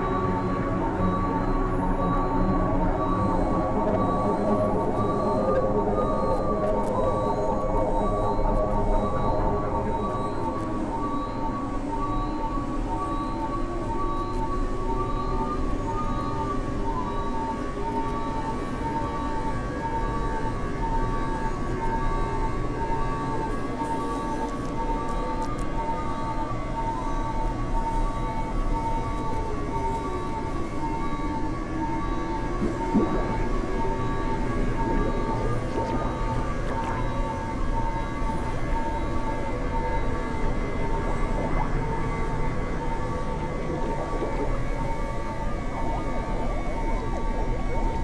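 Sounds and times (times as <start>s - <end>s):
pulsing high synthesizer tones: 0.0s - 48.0s
sliding siren-like synthesizer pitches: 0.0s - 48.0s.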